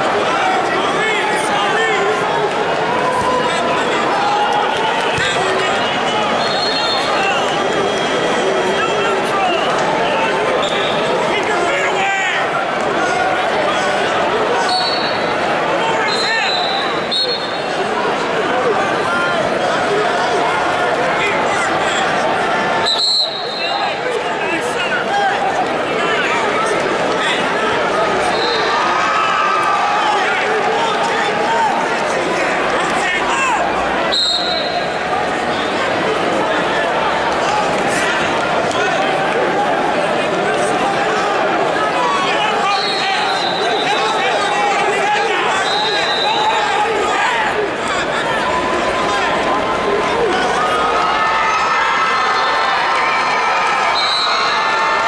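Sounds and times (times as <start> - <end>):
crowd hubbub: 0.0 - 55.0
crowd shouting: 0.0 - 55.0
referee's whistle blast: 6.4 - 8.9, 14.7 - 15.3, 16.1 - 17.6, 22.8 - 23.8, 34.1 - 34.9, 42.7 - 44.1, 45.5 - 46.6, 53.9 - 54.6
people shouting: 36.4 - 55.0.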